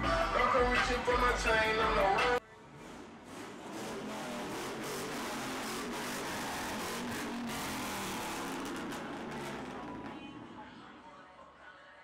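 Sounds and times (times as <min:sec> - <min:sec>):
music playing: 0:00.0 - 0:02.4
pickup truck driving past: 0:02.6 - 0:11.1.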